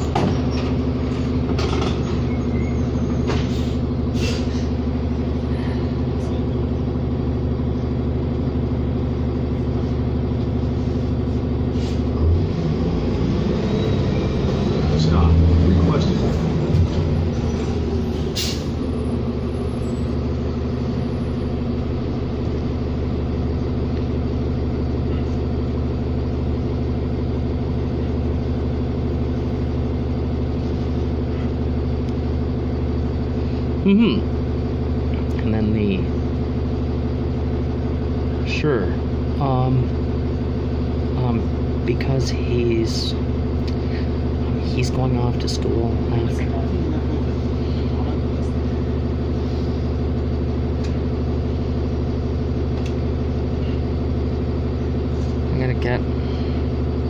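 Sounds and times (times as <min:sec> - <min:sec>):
bus diesel engine running: 0:00.0 - 0:57.0.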